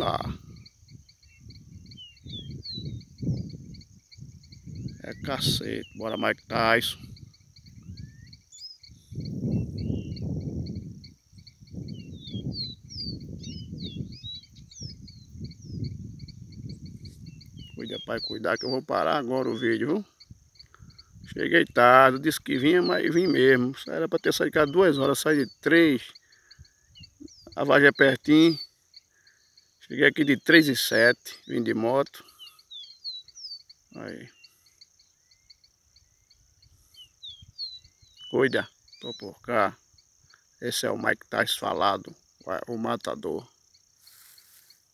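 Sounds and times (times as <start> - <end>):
bird whistled song: 0.0 - 6.5, 7.1 - 20.0, 24.6 - 30.5, 32.2 - 39.4
low rumbling microphone noise: 0.0 - 18.7
fast chirping pulse: 0.0 - 44.9
high insect buzz: 0.0 - 44.9.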